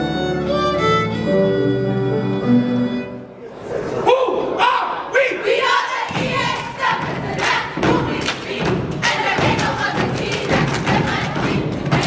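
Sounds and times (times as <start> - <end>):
hand claps: 7.4 - 12.0.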